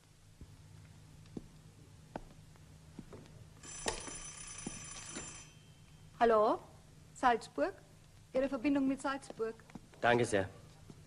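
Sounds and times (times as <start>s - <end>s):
telephone bell ringing: 3.6s - 6.0s.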